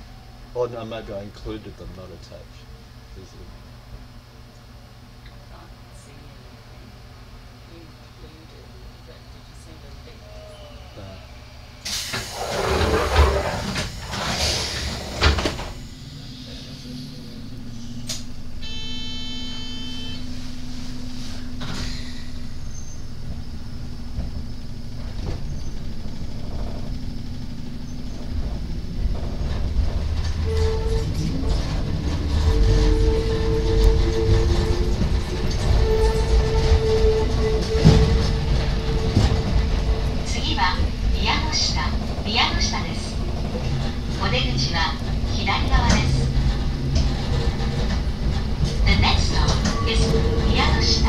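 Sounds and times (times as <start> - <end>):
wheels rumbling on rails: 0.0 - 18.9, 20.2 - 51.0
electric train low hum: 0.0 - 51.0
short electronic tone: 18.6 - 20.3
traction motor whine: 21.8 - 51.0.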